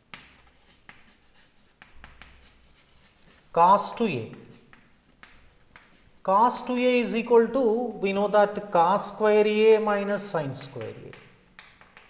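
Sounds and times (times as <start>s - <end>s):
chalk scratching on chalkboard: 0.0s - 7.6s, 8.4s - 12.0s
chalk tapping: 0.0s - 7.6s, 8.4s - 12.0s.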